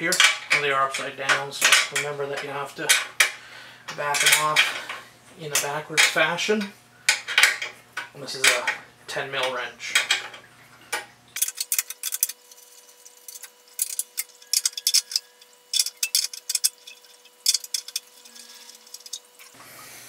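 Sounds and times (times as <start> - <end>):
wrench clicking on metal bolts: 13.3 - 19.2.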